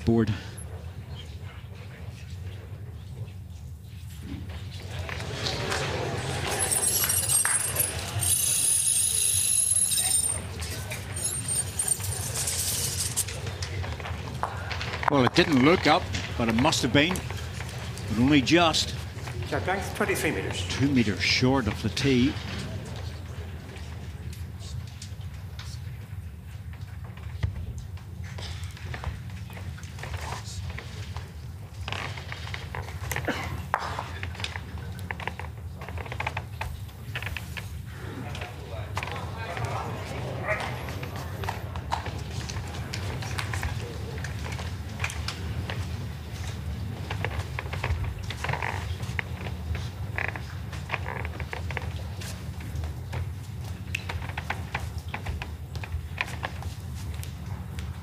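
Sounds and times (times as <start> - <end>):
murmur of spectators: 0.0 - 31.3, 31.9 - 52.6.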